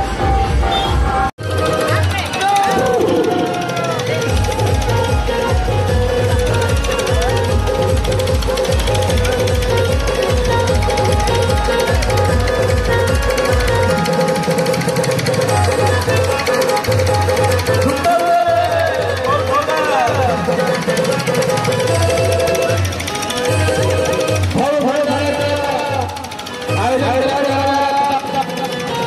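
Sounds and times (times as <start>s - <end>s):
pounding bass beat: 0.0s - 19.4s.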